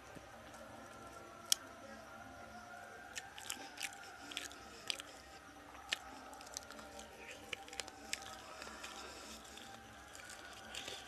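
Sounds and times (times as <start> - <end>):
wet mouth clicks and crunches: 3.1 - 5.2, 5.8 - 11.0
person chewing food: 3.1 - 11.0.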